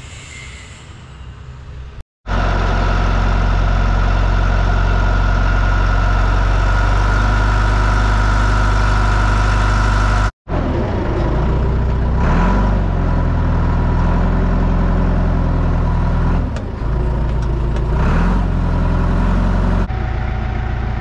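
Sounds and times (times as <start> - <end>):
diesel engine running: 1.8 - 21.0.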